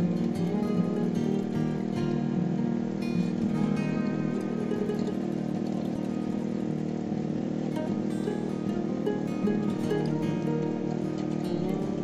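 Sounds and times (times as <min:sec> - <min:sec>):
plucked-string background music: 0:00.0 - 0:12.0
small petrol engine running: 0:00.0 - 0:12.0.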